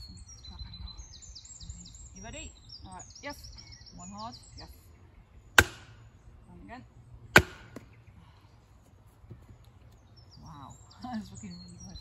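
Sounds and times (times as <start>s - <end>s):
wooden club striking blade: 5.6s - 6.0s, 7.4s - 7.9s.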